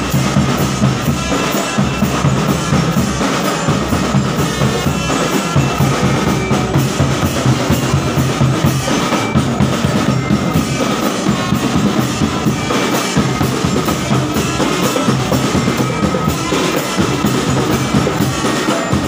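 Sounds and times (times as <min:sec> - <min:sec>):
bass drums beating: 0:00.0 - 0:19.0
snare drums: 0:00.0 - 0:19.0.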